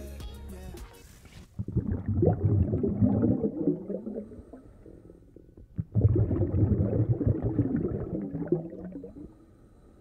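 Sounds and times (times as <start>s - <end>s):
underwater air bubbles gurgling: 1.6s - 9.4s.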